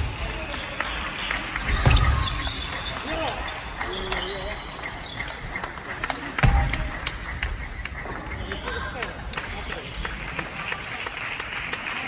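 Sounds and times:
audience clapping: 0.0 - 12.0.

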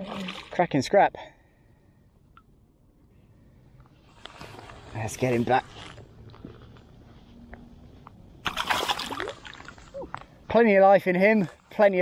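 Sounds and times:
fish splashing: 8.4 - 10.0
shallow water sloshing: 8.4 - 10.3.

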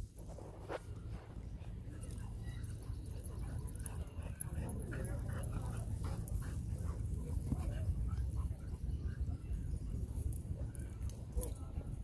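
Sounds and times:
dogs play-wrestling: 0.8 - 12.0.

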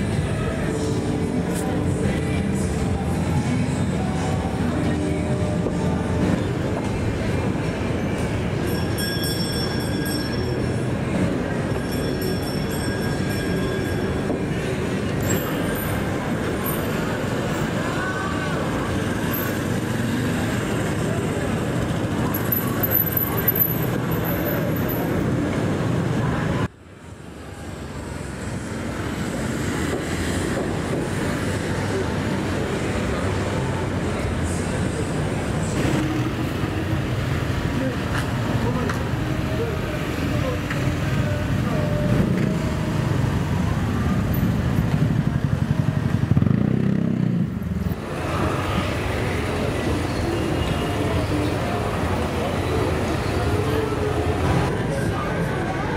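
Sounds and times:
city traffic: 0.0 - 55.9.

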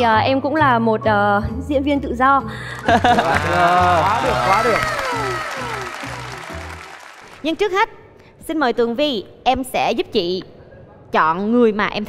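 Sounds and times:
applause: 2.6 - 7.8.

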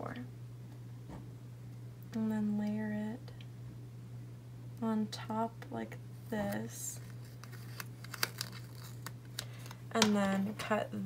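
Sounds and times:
low steady hum: 0.0 - 11.0
sticker crackling and clicking: 7.3 - 10.3.

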